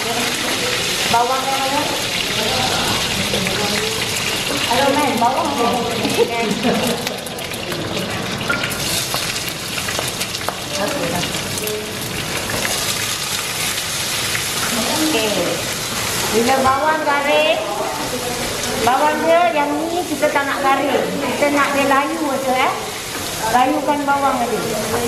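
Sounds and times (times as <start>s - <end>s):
onions sizzling in frying pan: 0.0s - 25.0s.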